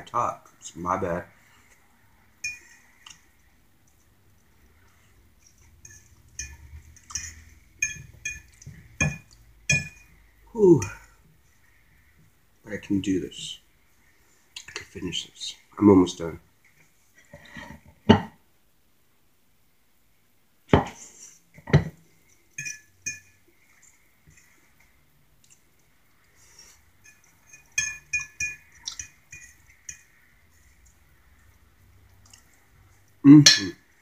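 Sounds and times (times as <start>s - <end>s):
metal fork clinking on plate: 22.6s - 23.4s, 27.0s - 30.1s.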